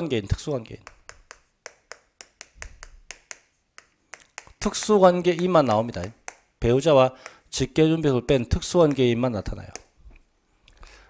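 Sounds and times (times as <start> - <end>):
chalk tapping on chalkboard: 0.8 - 6.5, 7.2 - 7.4, 8.8 - 9.1.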